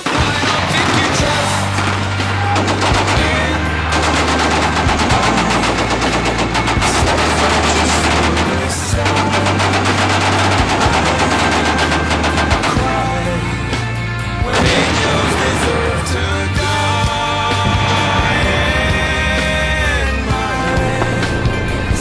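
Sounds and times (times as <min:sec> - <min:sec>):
machine-gun fire: 0:00.0 - 0:22.0
music with heavy bass line: 0:00.0 - 0:22.0.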